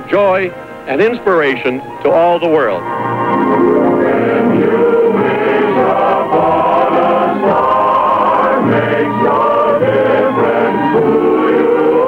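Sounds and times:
choir singing held notes: 0.9s - 12.0s.

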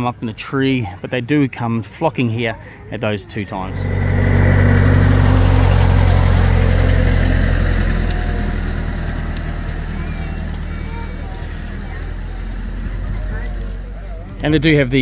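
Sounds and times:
tractor engine passing: 2.9s - 15.0s.

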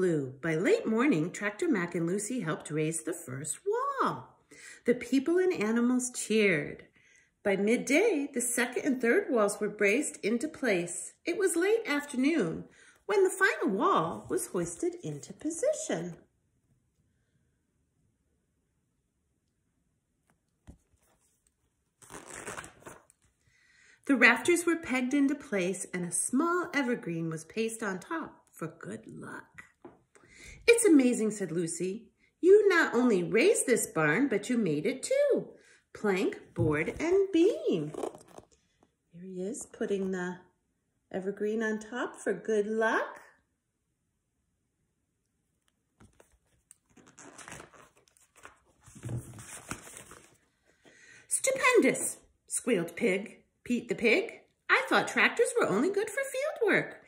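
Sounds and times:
book pages rustling: 20.2s - 23.4s, 36.4s - 39.0s, 45.6s - 50.8s.

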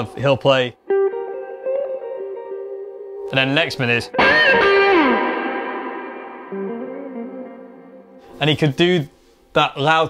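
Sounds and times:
electric guitar blues phrase: 0.1s - 8.3s.

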